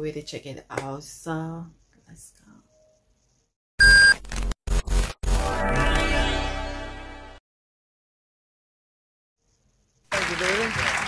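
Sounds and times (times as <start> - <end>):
electronic beep: 3.8 - 4.2.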